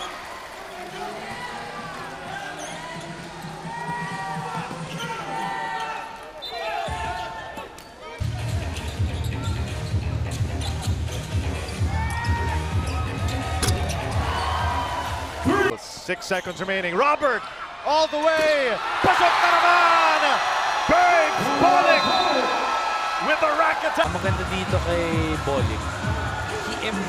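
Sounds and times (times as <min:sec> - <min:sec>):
sneakers squealing: 0:02.2 - 0:14.8.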